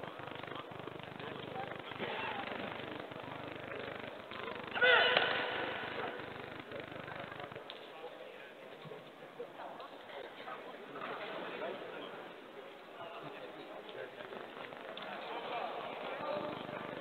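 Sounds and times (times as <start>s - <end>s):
arena chatter: 0.0s - 17.0s.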